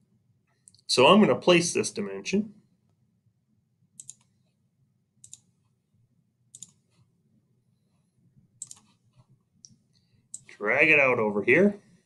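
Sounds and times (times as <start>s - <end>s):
low steady hum: 0.0s - 12.0s
computer mouse clicks: 4.0s - 4.4s, 5.2s - 5.5s, 6.5s - 7.0s, 8.6s - 10.5s.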